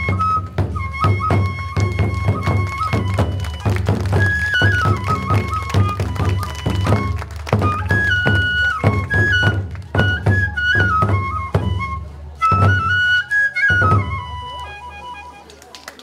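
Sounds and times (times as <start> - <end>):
bamboo flute high melody: 0.0 - 16.0.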